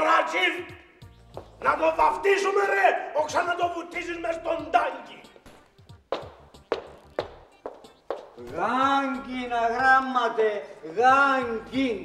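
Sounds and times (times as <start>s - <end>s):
person speaking: 1.6s - 5.5s, 7.6s - 12.0s.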